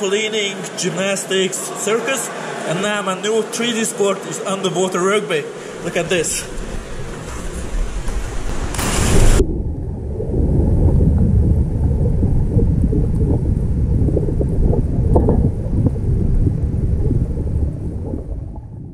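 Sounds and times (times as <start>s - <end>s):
muffled underwater churning rumble: 5.7s - 18.9s
diver splashing into water: 6.4s - 9.5s.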